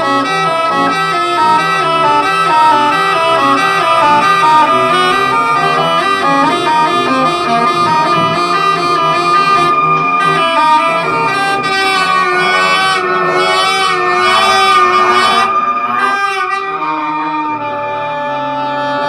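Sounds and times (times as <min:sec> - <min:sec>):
electronic drone tones: 0:00.0 - 0:19.0
woodwind playing: 0:00.0 - 0:19.0.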